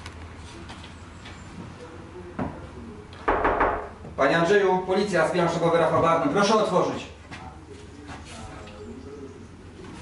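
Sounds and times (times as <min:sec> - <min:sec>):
knocking on a door: 0:03.3 - 0:04.2.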